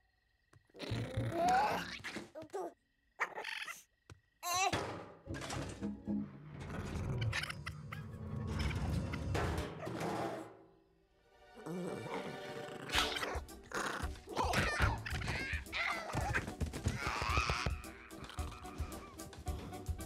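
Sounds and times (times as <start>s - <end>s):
raccoon cries: 12.9s - 19.2s
baby yelling angrily: 14.3s - 19.2s.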